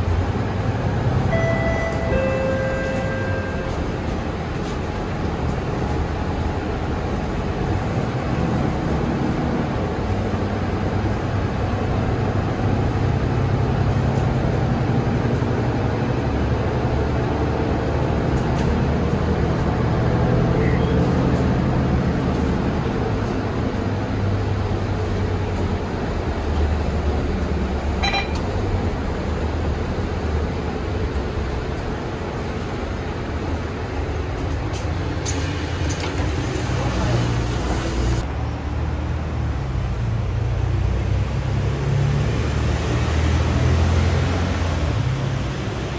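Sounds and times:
bus diesel engine hum: 0:00.0 - 0:45.9
road noise: 0:00.0 - 0:45.9.

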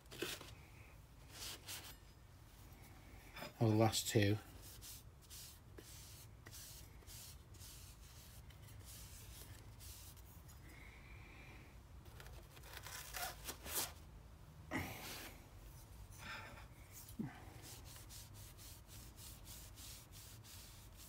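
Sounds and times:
cloth rubbing on wood: 0:17.6 - 0:21.0.

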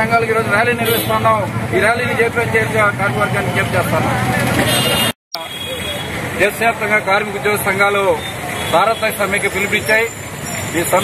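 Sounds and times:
street traffic hum: 0:00.0 - 0:11.0.

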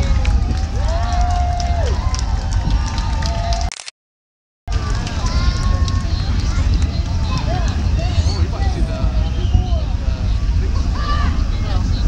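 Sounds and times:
distant rocket engine rumble: 0:04.7 - 0:12.0
people's voices: 0:04.7 - 0:12.0.

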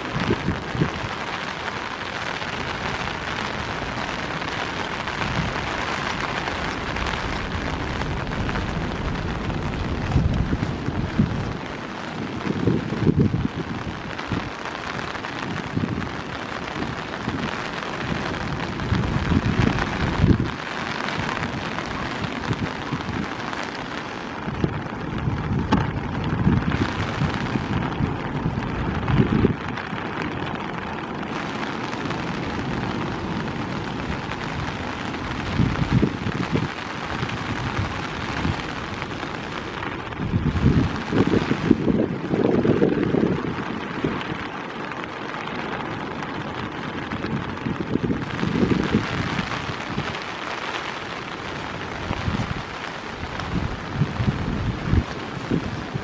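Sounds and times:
heavy rain: 0:00.0 - 0:56.0
wind buffeting microphone: 0:00.0 - 0:56.0.

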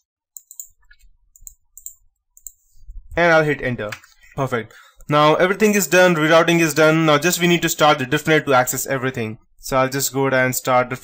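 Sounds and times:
keyboard clicks: 0:00.4 - 0:02.6
computer mouse clicks: 0:00.4 - 0:02.8.

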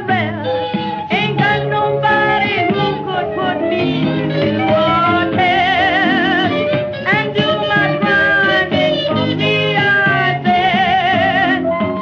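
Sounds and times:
blues accompaniment: 0:00.0 - 0:12.0.

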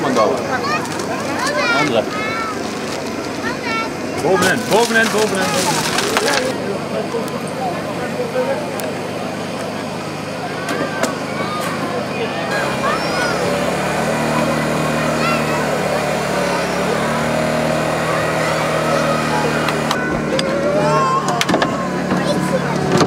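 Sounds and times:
crowd chatter: 0:00.0 - 0:23.0
small engine running: 0:00.0 - 0:23.0.

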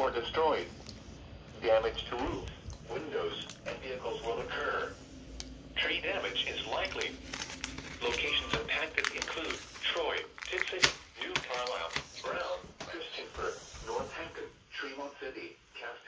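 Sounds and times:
automated voice through small speaker: 0:01.6 - 0:05.0, 0:05.7 - 0:07.2, 0:08.0 - 0:16.0.

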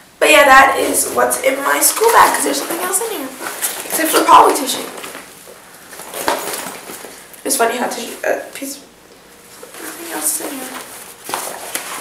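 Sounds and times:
fabric backpack rustling: 0:00.8 - 0:07.3.

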